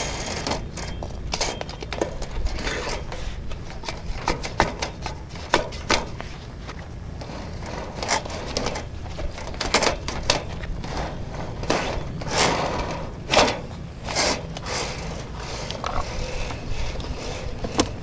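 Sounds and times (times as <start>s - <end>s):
steady low hum: 0.0s - 18.0s
camera clicking and scraping in drain: 15.6s - 17.1s.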